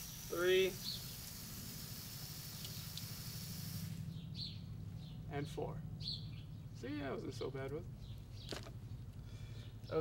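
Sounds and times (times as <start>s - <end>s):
water hissing from valve: 0.0s - 4.0s.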